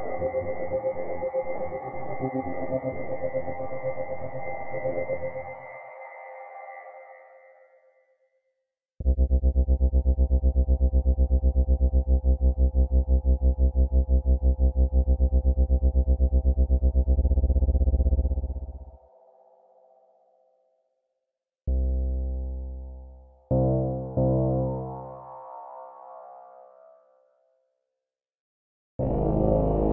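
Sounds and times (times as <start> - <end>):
layered tonal pad: 0.0 - 3.7.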